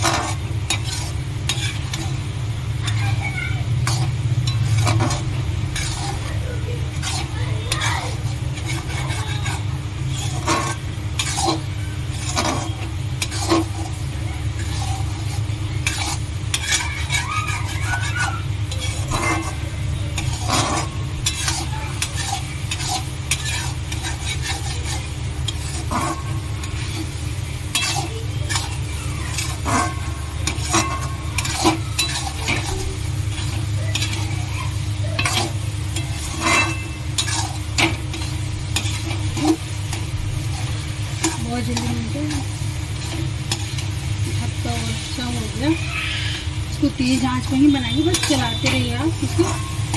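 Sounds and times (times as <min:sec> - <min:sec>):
frying sizzle: 0:00.0 - 0:49.9
metal spatula scraping metal pan: 0:00.0 - 0:49.9
steady low hum: 0:00.0 - 0:49.9.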